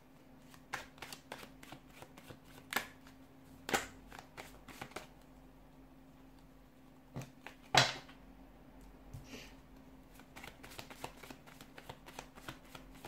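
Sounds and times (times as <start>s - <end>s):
cards being shuffled: 0.5s - 3.0s, 3.6s - 5.2s, 10.1s - 13.0s.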